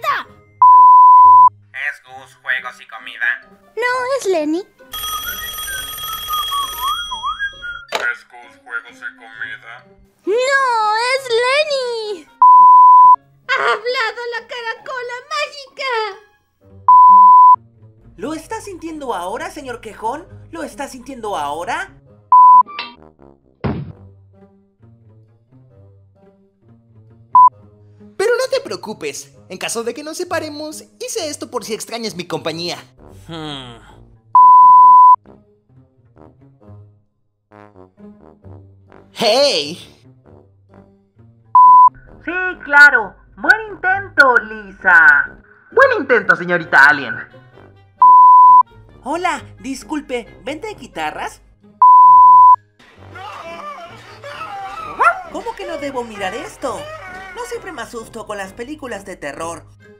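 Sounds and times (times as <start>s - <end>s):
test tone beep: 0.6s - 1.5s, 12.4s - 13.2s, 16.9s - 17.6s, 22.4s - 22.7s, 34.4s - 35.2s, 41.6s - 42.0s, 48.0s - 48.6s, 51.8s - 52.6s
telephone ringing: 4.9s - 7.9s
person whistling a tune: 7.1s - 7.9s.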